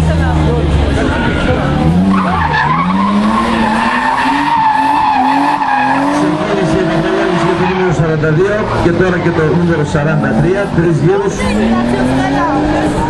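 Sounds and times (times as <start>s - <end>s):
tyres skidding and squealing: 0.0s - 13.0s
car engine revving hard: 0.1s - 13.0s.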